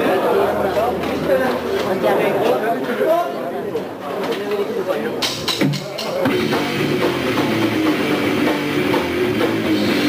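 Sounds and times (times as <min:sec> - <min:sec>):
people talking: 0:00.0 - 0:07.5.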